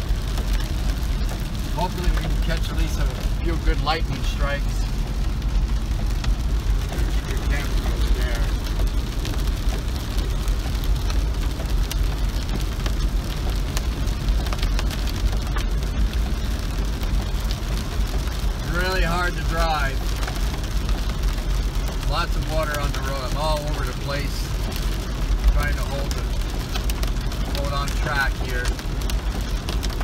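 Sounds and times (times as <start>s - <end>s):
car driving on wet road: 0.0s - 30.0s
heavy rain on car roof: 0.0s - 30.0s.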